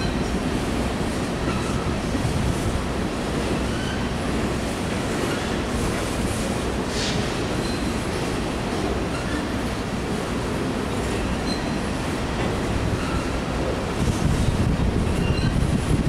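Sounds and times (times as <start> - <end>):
train wheels rumbling on rails: 0.0 - 16.0
faint wheel squeals: 7.6 - 8.0, 11.4 - 11.8, 15.2 - 15.6.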